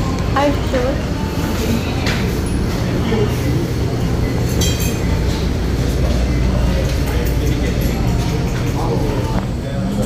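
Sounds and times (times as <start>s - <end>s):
restaurant background rumble: 0.0s - 10.0s.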